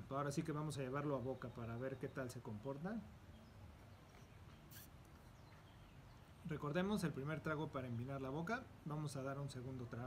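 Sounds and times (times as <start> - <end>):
soft high hiss: 0.0 - 10.0.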